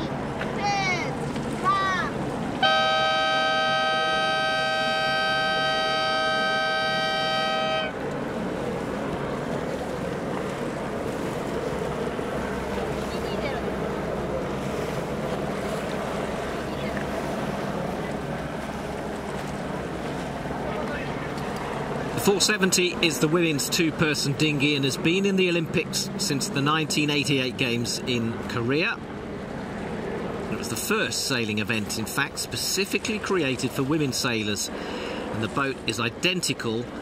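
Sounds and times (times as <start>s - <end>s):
water: 0.0s - 37.0s
wind: 0.0s - 37.0s
horn blast two notes: 2.6s - 8.0s.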